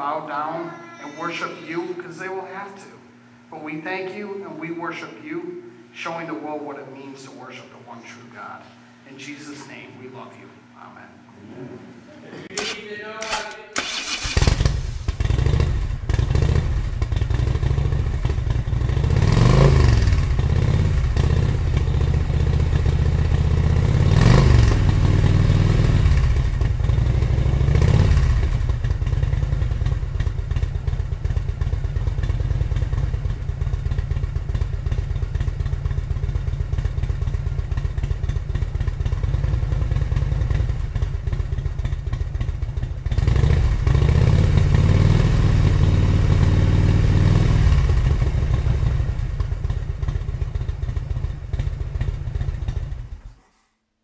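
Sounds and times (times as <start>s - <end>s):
motorcycle engine revving: 13.8s - 53.4s.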